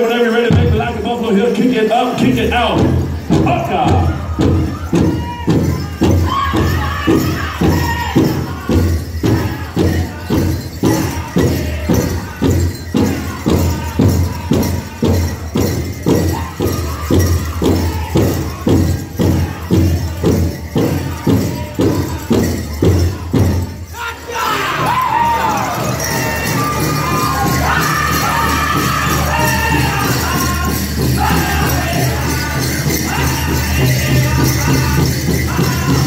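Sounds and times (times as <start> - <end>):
bells and jingles rattling: 0.0 - 36.0
men singing: 0.0 - 36.0.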